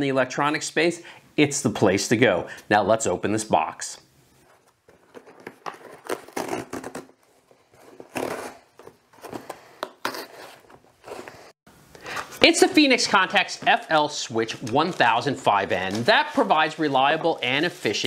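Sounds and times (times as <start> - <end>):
cardboard tearing and rustling: 4.5 - 11.3.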